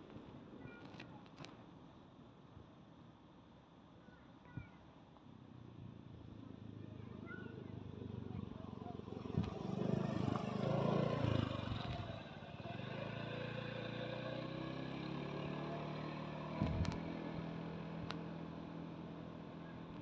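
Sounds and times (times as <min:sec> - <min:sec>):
scooter engine passing: 0:07.5 - 0:20.0.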